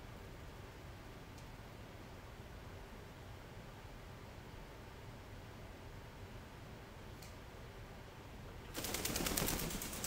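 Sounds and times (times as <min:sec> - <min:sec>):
wing flaps: 0:08.8 - 0:10.0.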